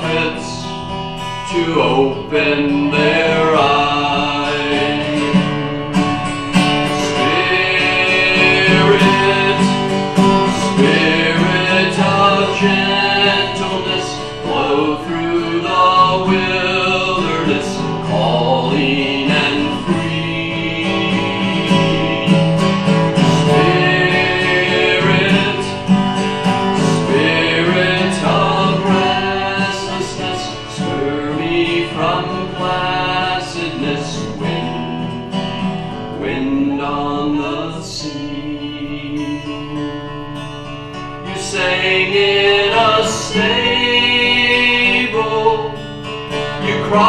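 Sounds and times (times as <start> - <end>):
voices singing a hymn: 0.0 - 40.5, 41.2 - 47.0
acoustic guitar strumming: 0.0 - 47.0.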